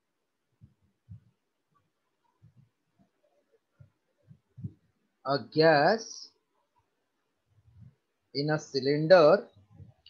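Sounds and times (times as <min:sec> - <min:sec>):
faint low thumps: 0:03.8 - 0:05.0.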